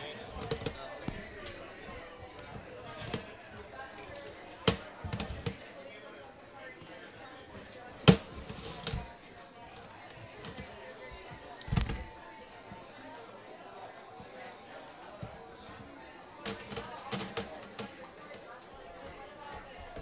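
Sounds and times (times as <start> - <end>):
faint background voices: 0.0 - 20.0.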